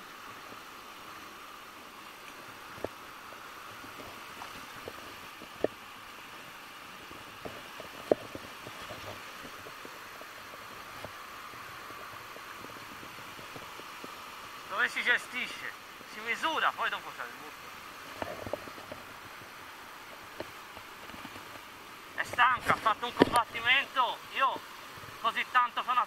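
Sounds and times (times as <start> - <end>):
flowing river water: 0.0 - 26.0.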